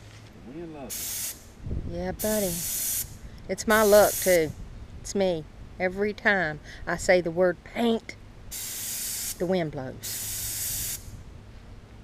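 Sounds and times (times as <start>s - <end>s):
spray gun air hiss: 0.9s - 1.5s, 2.2s - 4.6s, 8.5s - 11.2s.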